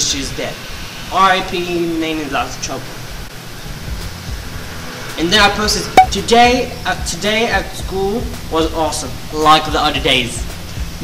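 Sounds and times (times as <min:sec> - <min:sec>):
even hiss: 0:00.0 - 0:11.0.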